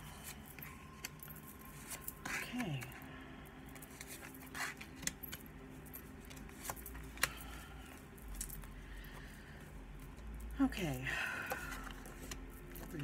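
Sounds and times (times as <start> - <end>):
cards rustling: 0.0 - 13.0.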